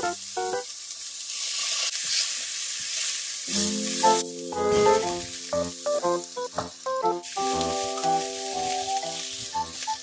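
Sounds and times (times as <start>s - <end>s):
onion and garlic sizzling in pan: 0.0s - 10.0s
light background music: 3.5s - 10.0s.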